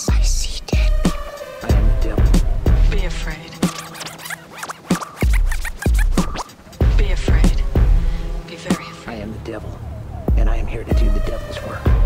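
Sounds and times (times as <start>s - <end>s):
hip-hop beat with kick drums: 0.0s - 8.8s
turntable scratching: 0.8s - 7.7s.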